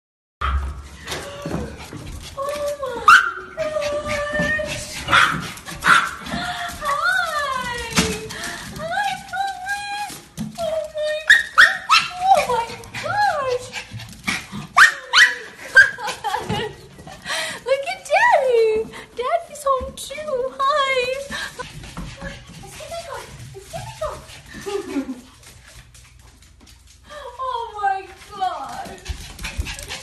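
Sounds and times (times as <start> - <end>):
dogs barking: 5.1 - 6.2.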